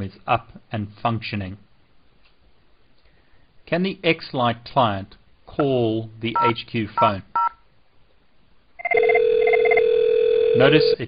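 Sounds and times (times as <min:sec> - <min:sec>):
softphone ringing in pulsing bursts: 0:08.8 - 0:11.0
steady ringback tone: 0:08.8 - 0:11.0.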